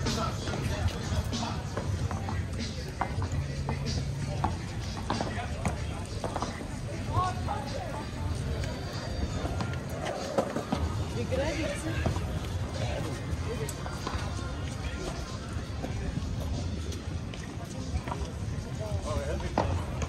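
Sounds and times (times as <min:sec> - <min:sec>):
indistinct voices talking: 0:00.0 - 0:20.0
music playing: 0:00.0 - 0:20.0.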